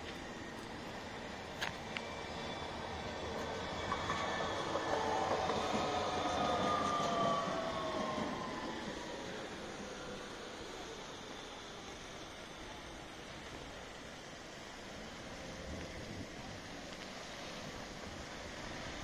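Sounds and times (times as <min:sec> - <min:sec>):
tram passing: 0:00.0 - 0:19.0.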